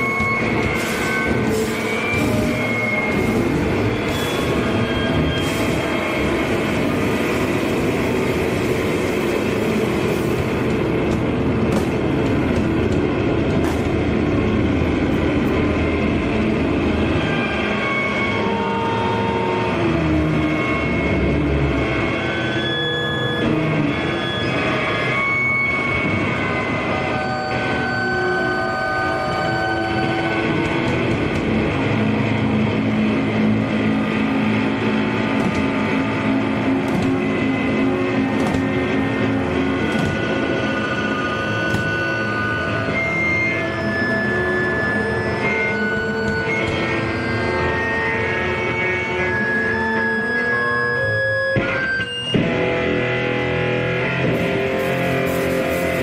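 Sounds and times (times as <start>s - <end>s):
loud distorted band playing live: 0.0s - 14.9s, 29.4s - 56.0s
held feedback-like guitar notes: 0.0s - 56.0s.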